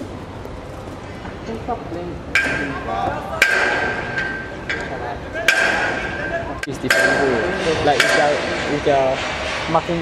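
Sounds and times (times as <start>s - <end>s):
people talking: 1.5s - 10.0s
sharp ringing metallic knocks: 2.4s - 2.8s, 3.4s - 9.5s.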